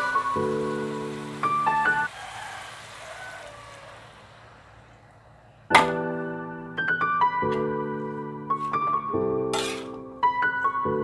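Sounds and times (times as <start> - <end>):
piano music: 0.0 - 2.1, 5.7 - 11.0
water hissing in hot pan: 0.0 - 4.7.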